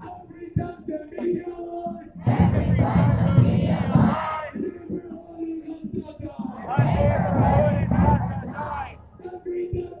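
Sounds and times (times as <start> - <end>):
crowd shouting a chant: 2.2 - 4.6, 6.5 - 9.8.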